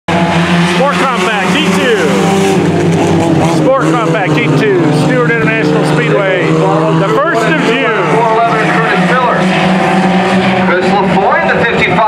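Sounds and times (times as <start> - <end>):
race car engines droning: 0.1 - 12.0
person talking: 0.8 - 2.3, 3.4 - 9.1.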